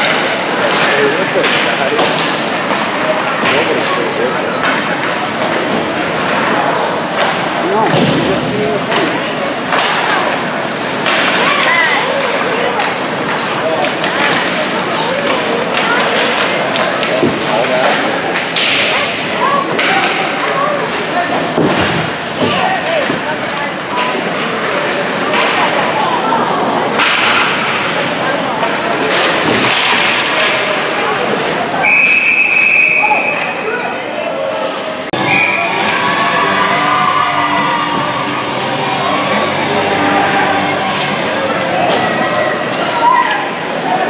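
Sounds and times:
puck and sticks knocking on boards: 0.0s - 3.7s, 7.2s - 10.2s, 11.0s - 19.0s, 21.5s - 23.4s, 28.6s - 30.7s
crowd noise: 0.0s - 44.0s.

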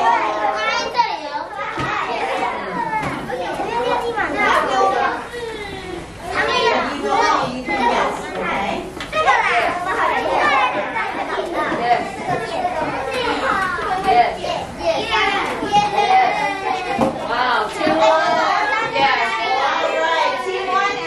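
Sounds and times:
children chattering: 0.0s - 21.0s.

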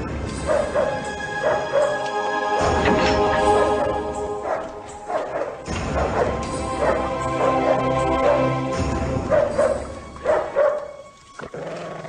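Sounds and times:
dramatic film score: 0.0s - 11.6s
dog barking: 0.4s - 2.0s, 4.4s - 8.6s, 9.3s - 11.0s.

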